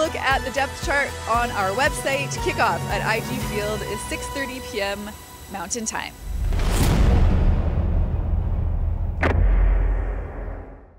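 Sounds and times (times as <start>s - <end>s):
deep low rumble: 6.0s - 10.9s
sharp hit: 6.1s - 10.9s.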